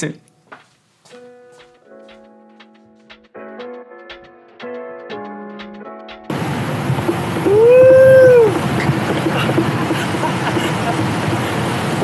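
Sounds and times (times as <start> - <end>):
skateboard rolling on concrete: 6.3 - 12.0
wind: 6.3 - 12.0
rising and falling vocal call: 7.4 - 8.6.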